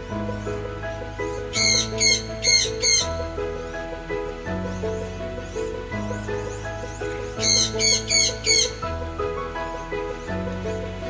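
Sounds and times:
background music sustained tones: 0.0s - 11.0s
cockatoo harsh calls: 1.5s - 3.1s, 7.4s - 8.8s.

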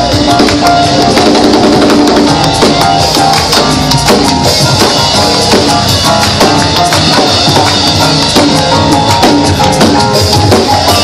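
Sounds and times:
audience clapping along: 0.0s - 11.0s
drum kit and bass groove: 0.0s - 11.0s.

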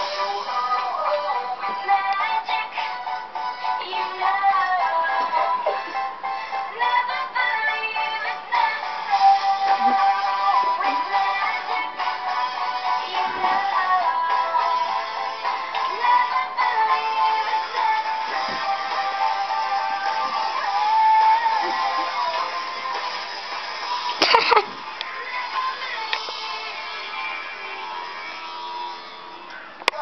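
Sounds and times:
song with sung vocals: 0.0s - 28.4s.

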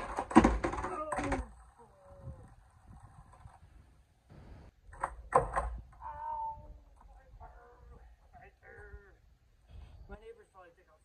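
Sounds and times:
skateboard clattering on concrete: 0.0s - 1.8s.

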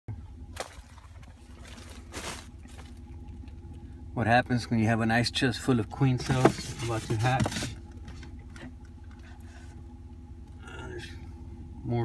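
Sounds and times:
truck engine idling: 0.1s - 12.0s.

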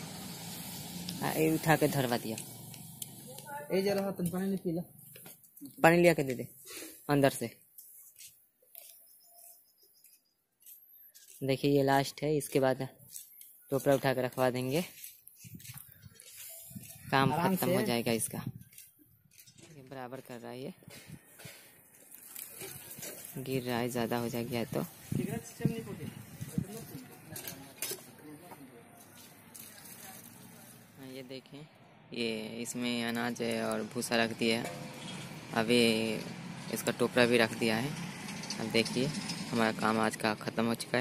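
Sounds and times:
faint bird chirp: 8.7s - 11.2s
dry straw rustling and crackling: 13.1s - 19.6s, 21.8s - 25.6s, 29.0s - 31.0s.

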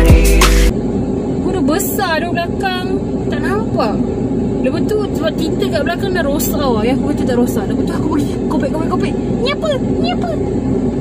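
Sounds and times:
car engine and road rumble: 0.0s - 11.0s
woman talking: 1.4s - 10.5s.

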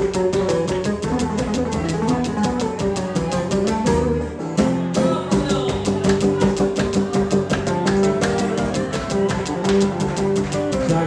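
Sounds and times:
fast strummed beat: 0.0s - 11.0s
lutes playing folk music: 0.0s - 11.0s.

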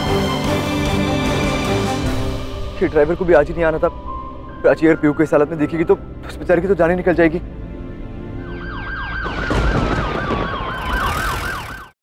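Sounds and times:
siren in a fast yelp: 8.5s - 12.0s.

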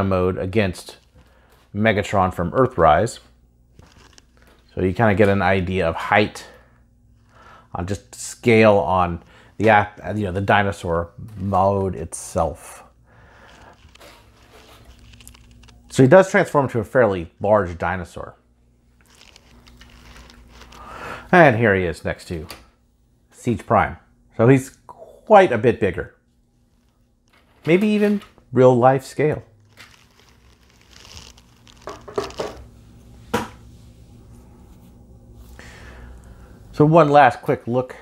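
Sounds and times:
soft plastic rustle: 13.3s - 15.8s, 19.0s - 21.0s, 29.5s - 32.7s.

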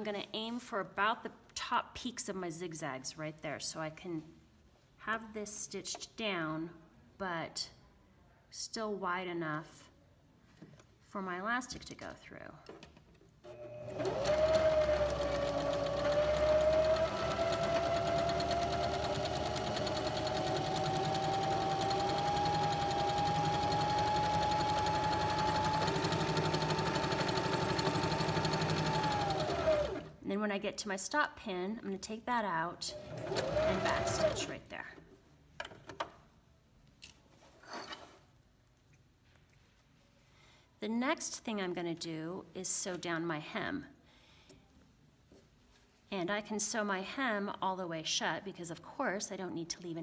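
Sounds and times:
electric sewing machine stitching: 13.5s - 30.2s, 32.9s - 34.6s.

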